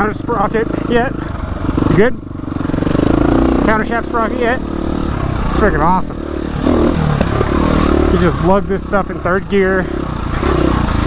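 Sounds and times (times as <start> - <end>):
dirt bike engine lugging: 4.9 - 11.0
bike clatter on trail: 7.0 - 8.0.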